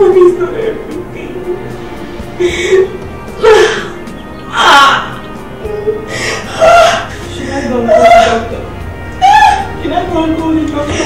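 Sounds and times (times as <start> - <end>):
soundtrack music: 0.0 - 11.0
woman crying out gasping: 2.4 - 7.3.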